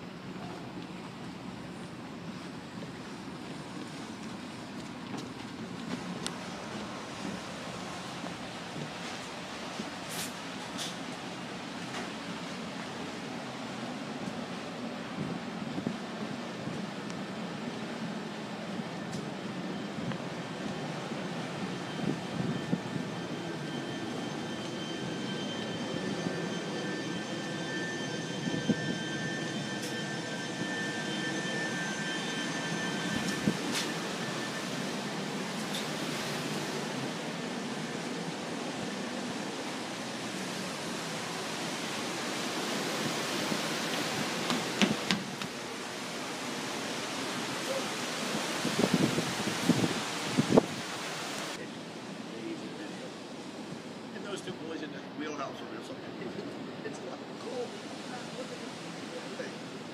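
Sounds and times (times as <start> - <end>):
ship running noise: 0.0 - 51.6
rushing wind: 0.0 - 54.4
faint high whine: 18.8 - 44.8.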